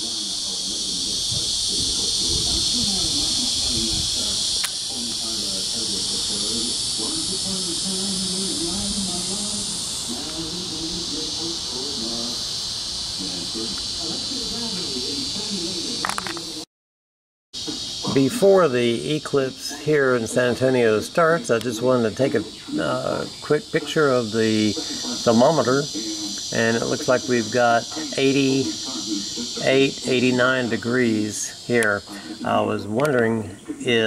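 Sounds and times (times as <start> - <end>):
cicadas droning: 0.0 - 16.6, 17.6 - 34.0
murmur of distant voices: 0.0 - 16.7, 17.6 - 34.0.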